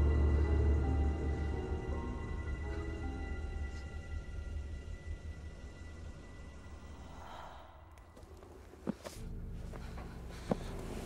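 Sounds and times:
low rumble: 0.0 - 8.6
soft breathy sigh: 6.9 - 8.0.

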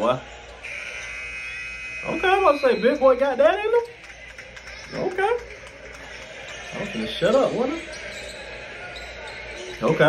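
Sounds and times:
arena buzzer horn: 0.6 - 3.3.

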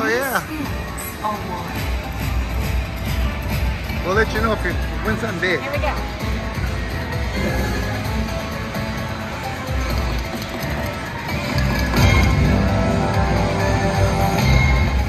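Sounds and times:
casino background din: 0.0 - 15.0.

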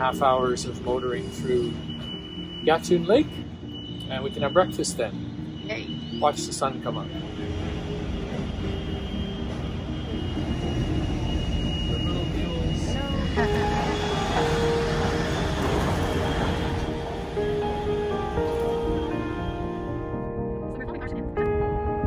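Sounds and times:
background music with held notes: 0.0 - 22.0.

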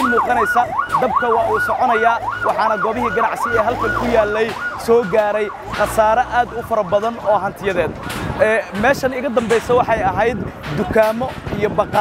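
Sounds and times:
emergency siren yelping: 0.0 - 8.4, 11.6 - 12.0
man talking: 0.0 - 12.0.

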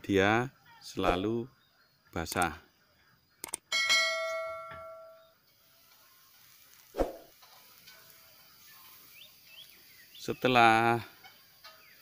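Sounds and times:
bell ding: 3.7 - 5.2.

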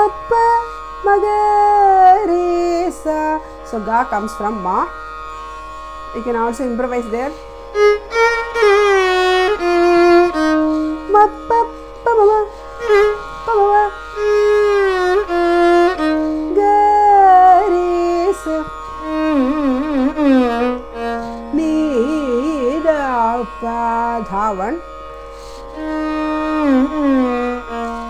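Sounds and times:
violin melody with gliding notes: 0.0 - 28.0.

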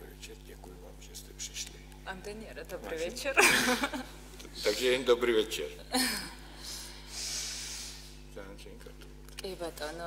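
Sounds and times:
breathy hiss: 6.4 - 8.3.

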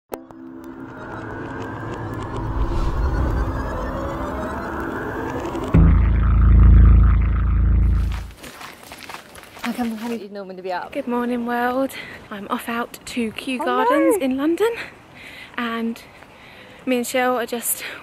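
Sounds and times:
electronic build with quick ticks: 0.2 - 8.3
deep bass boom: 2.4 - 8.3.

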